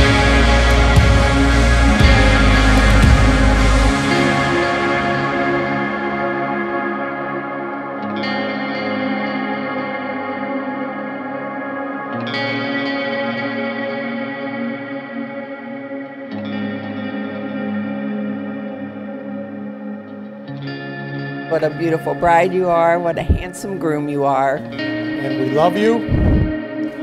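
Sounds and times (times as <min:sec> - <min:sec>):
background music with layered chords: 0:00.0 - 0:27.0.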